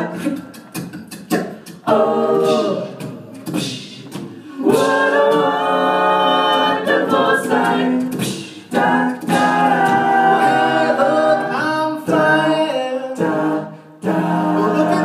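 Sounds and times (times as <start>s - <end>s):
a cappella group singing: 0.0s - 15.0s.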